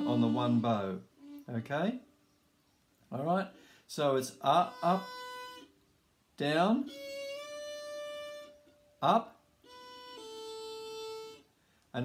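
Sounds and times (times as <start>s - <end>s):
fiddle bowed note: 0.0s - 1.8s, 4.5s - 5.7s, 6.8s - 11.5s.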